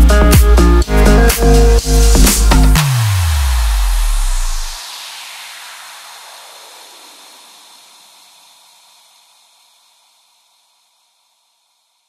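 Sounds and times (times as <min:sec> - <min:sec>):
hissing white noise wash: 0:01.9 - 0:12.0.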